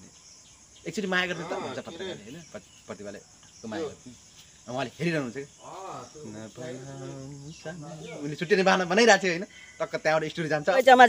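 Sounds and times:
insects chirring: 0.0s - 11.0s
man talking: 0.9s - 11.0s.

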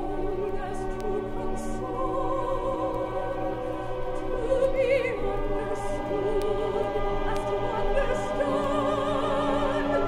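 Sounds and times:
choir and orchestra music: 0.0s - 10.0s.

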